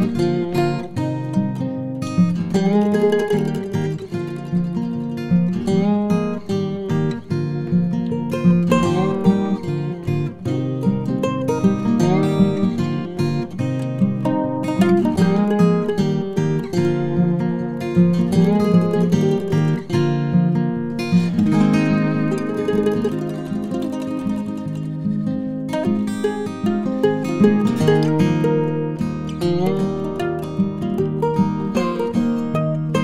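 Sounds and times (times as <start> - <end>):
acoustic guitar music: 0.0 - 33.0.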